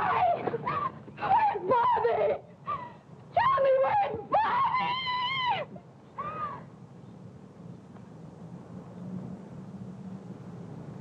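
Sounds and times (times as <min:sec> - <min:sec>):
woman screaming and crying out: 0:00.0 - 0:06.7.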